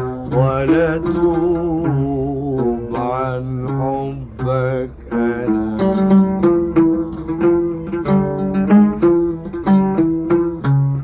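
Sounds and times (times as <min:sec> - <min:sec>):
man singing long held notes: 0:00.3 - 0:07.4.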